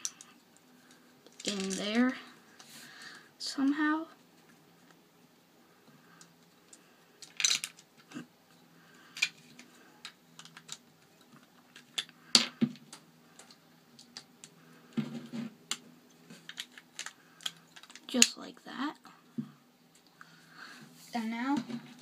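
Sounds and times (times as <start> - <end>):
plastic bricks clicking: 1.3 - 1.9, 7.2 - 7.9, 9.2 - 14.5, 16.4 - 18.3.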